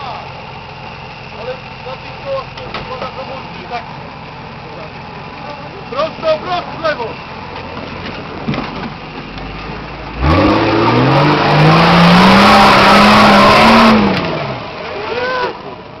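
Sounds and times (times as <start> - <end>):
diesel engine revving: 0.0 - 16.0.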